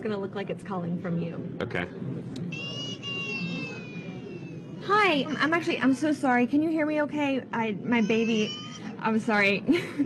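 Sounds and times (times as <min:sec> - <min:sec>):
baby crying from laptop: 0:02.5 - 0:05.2, 0:08.0 - 0:09.0.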